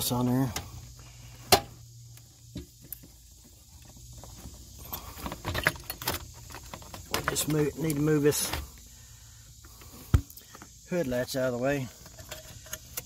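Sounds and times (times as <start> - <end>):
light clicks and rattles: 2.2 - 8.8.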